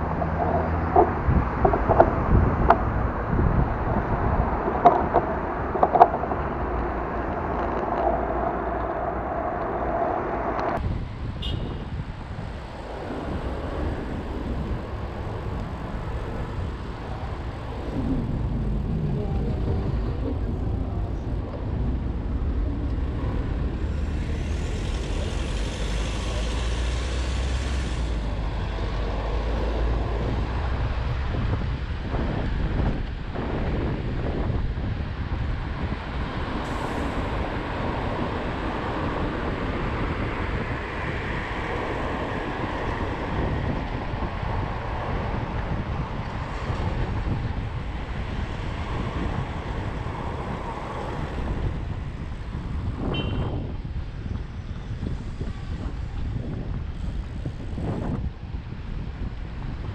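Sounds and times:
low rumble: 0:00.0 - 0:11.2, 0:12.1 - 0:34.2
car and bus engines: 0:00.0 - 0:59.9
hiss: 0:24.0 - 0:28.2.

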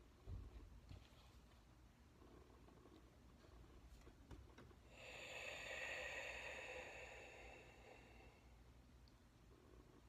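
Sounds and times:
long hissing breath: 0:04.9 - 0:08.6.

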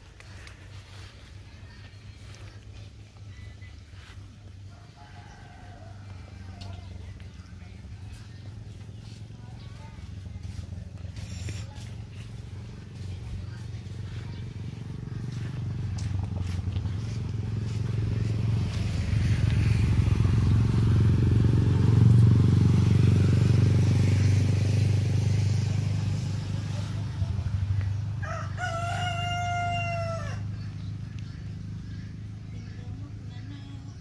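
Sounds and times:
rooster crowing: 0:04.7 - 0:06.9, 0:28.2 - 0:30.6
low droning rumble: 0:05.9 - 0:29.2.

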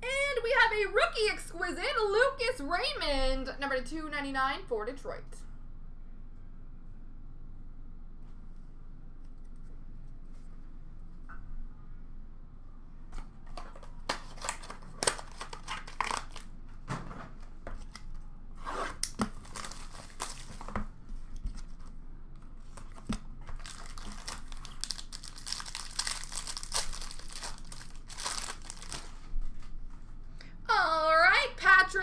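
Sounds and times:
wrapper tearing and crinkling: 0:14.1 - 0:16.5, 0:19.0 - 0:20.7, 0:22.7 - 0:29.3.

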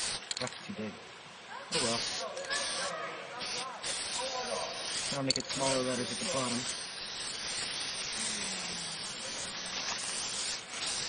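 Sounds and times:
spray-paint can hissing: 0:00.0 - 0:00.4, 0:01.7 - 0:11.0.

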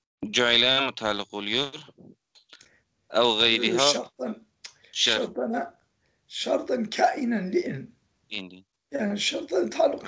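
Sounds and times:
man speaking: 0:00.2 - 0:02.0, 0:03.2 - 0:04.4, 0:05.0 - 0:05.6, 0:06.3 - 0:07.8, 0:08.4 - 0:10.0.

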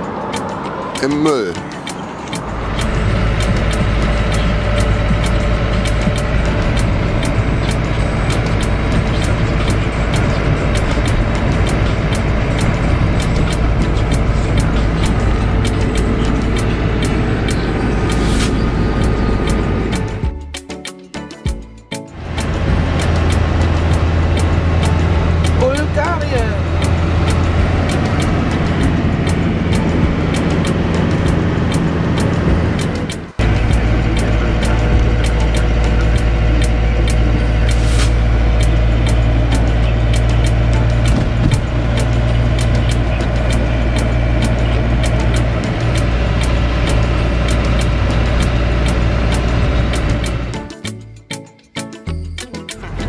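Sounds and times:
road noise: 0:00.0 - 0:20.8, 0:21.4 - 0:51.2, 0:52.7 - 0:53.0
van engine drone: 0:00.0 - 0:51.3, 0:52.7 - 0:53.0.

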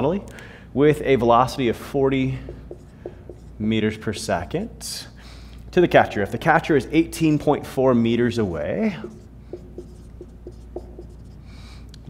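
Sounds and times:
marker squeaking on whiteboard: 0:02.5 - 0:03.7, 0:08.8 - 0:11.5.

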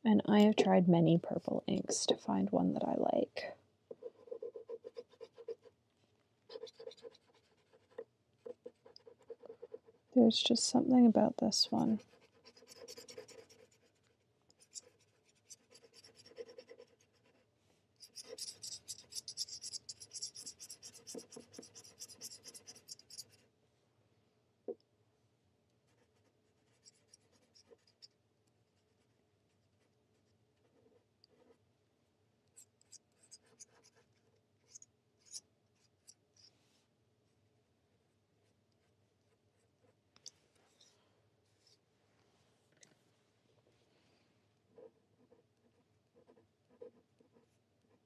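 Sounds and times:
pen nib scratching on paper: 0:03.9 - 0:05.7, 0:06.5 - 0:10.1, 0:11.8 - 0:23.4, 0:25.9 - 0:28.2, 0:32.5 - 0:36.5, 0:44.8 - 0:48.0.

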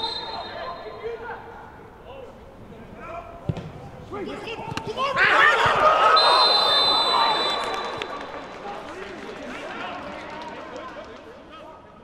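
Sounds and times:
players shouting: 0:04.2 - 0:08.3.

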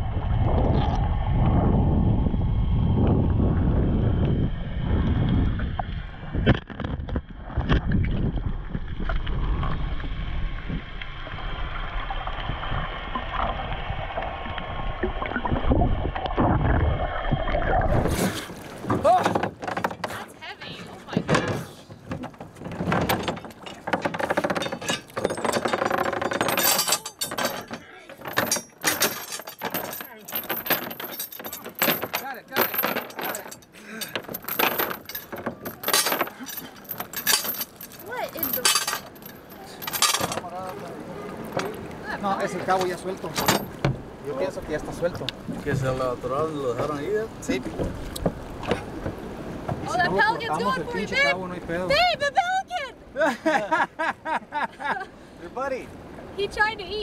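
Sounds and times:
water sloshing: 0:11.8 - 0:53.1
anchor chain rattling: 0:18.5 - 0:45.2.

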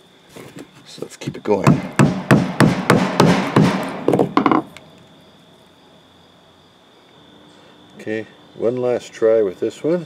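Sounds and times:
rubber mallet knocking rock: 0:01.6 - 0:04.8.

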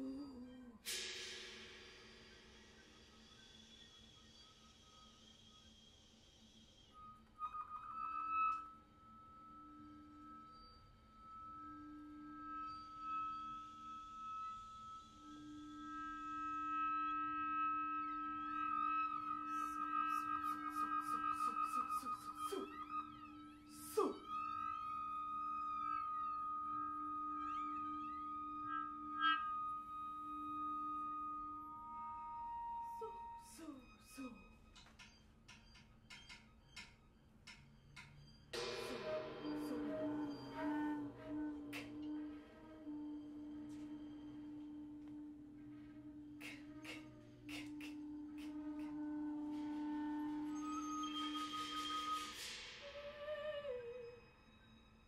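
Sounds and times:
flute high note fluttering: 0:02.5 - 0:35.2, 0:38.5 - 0:55.0
low held note: 0:38.6 - 0:54.2
sweeping pitch glides: 0:38.6 - 0:54.3.

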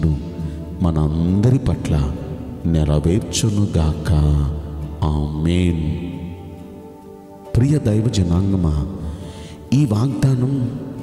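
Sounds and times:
man speaking: 0:00.0 - 0:06.6, 0:07.4 - 0:11.0
soft background music: 0:00.0 - 0:11.0.

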